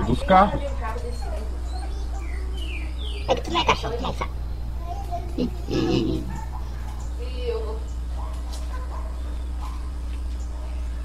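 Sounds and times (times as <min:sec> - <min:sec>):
dog whining: 0:03.2 - 0:07.1
low hum: 0:03.3 - 0:07.2.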